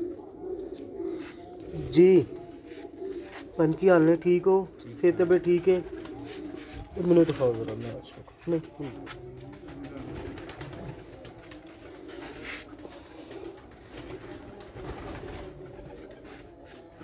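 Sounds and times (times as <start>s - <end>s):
pigeons cooing: 0.0s - 17.0s.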